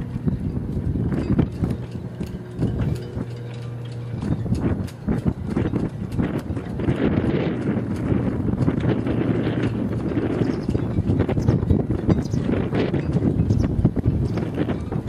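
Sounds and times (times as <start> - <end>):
steady low hum: 0.0 - 15.0
wind rumble on microphone: 0.0 - 15.0.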